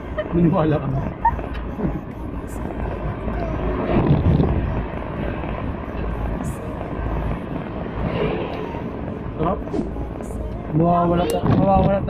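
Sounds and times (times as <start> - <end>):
faint voices: 0.0 - 12.0
vehicle engine rumble: 0.0 - 12.0.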